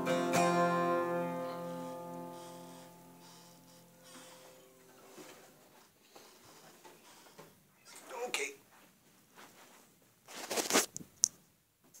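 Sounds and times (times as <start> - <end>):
camera handling rustling scrape: 10.3 - 11.0.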